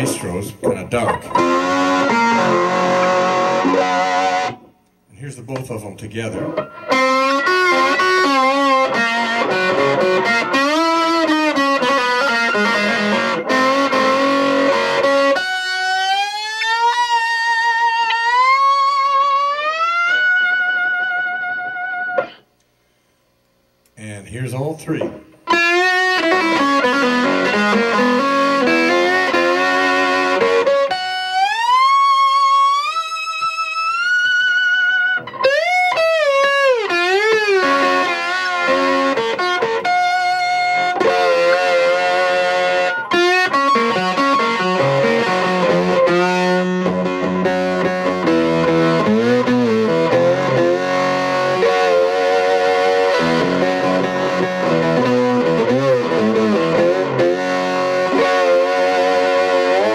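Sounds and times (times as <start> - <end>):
overdriven slide lap steel guitar: 0.0 - 5.0, 6.4 - 23.0, 25.1 - 59.9.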